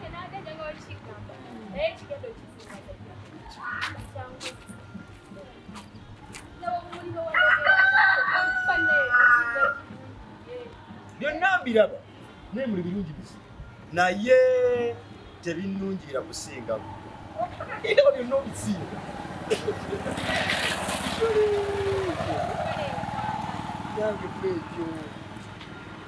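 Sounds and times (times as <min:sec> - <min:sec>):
rooster crowing: 0:07.3 - 0:09.9
engine running: 0:16.8 - 0:26.0.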